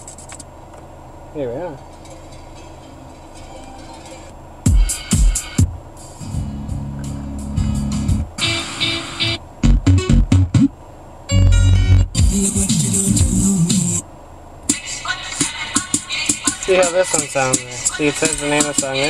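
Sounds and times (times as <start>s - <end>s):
bass-heavy music over car speakers: 2.4s - 10.7s, 11.3s - 14.0s, 14.7s - 19.0s.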